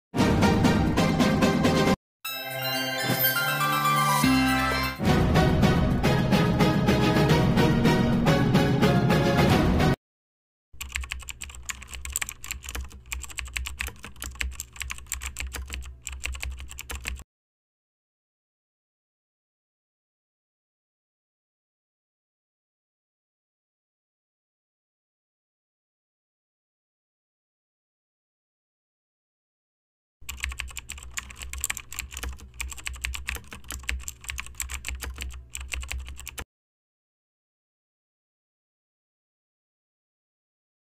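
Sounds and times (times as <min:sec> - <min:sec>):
keyboard key clicks: 0:10.8 - 0:17.2, 0:30.2 - 0:36.4.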